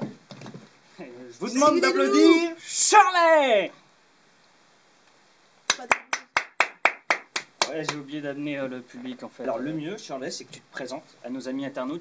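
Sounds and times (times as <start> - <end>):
person clapping: 5.7 - 8.0.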